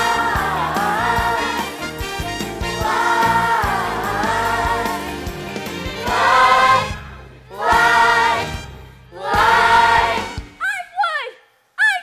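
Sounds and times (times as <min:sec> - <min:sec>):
band with drumbeat: 0:00.0 - 0:06.9, 0:07.7 - 0:10.6.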